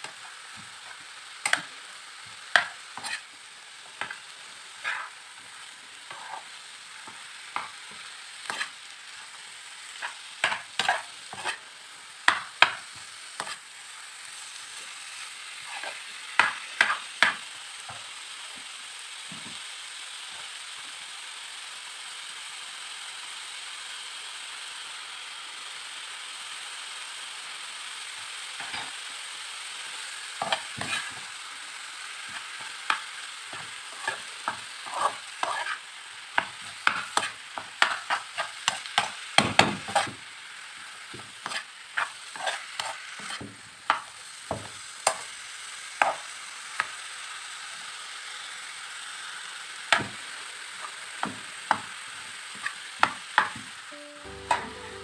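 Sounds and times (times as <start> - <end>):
meat sizzling in a pan: 0.0 - 55.0
metal spoon scraping a pan: 2.6 - 3.3, 4.8 - 5.2, 6.1 - 6.6, 8.4 - 8.8, 10.0 - 11.6, 13.4 - 13.6, 15.6 - 17.0, 28.6 - 28.9, 30.4 - 31.3, 32.3 - 35.8, 36.4 - 40.1, 41.4 - 44.1.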